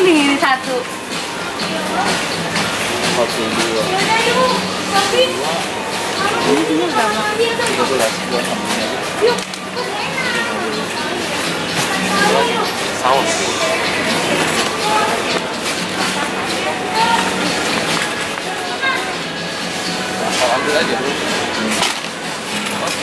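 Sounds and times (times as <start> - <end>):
background music: 0.0 - 23.0
indistinct voices talking: 0.0 - 23.0.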